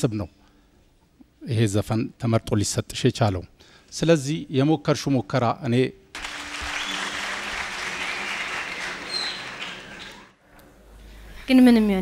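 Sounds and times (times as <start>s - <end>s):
audience applauding: 6.1s - 10.4s.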